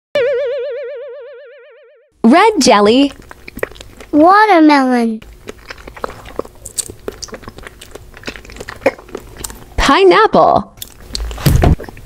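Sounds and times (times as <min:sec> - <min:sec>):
cartoon boing: 0:00.2 - 0:02.0.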